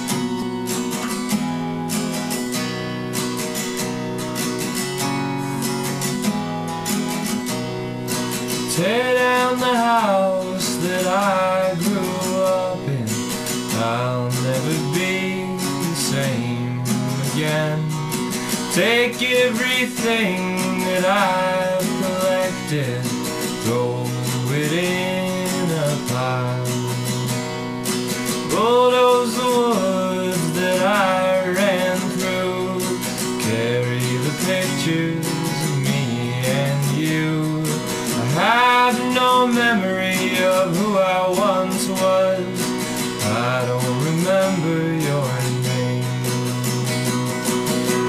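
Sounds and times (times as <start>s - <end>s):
acoustic guitar strumming: 0.0s - 48.0s
man singing: 8.5s - 27.5s, 28.1s - 46.7s.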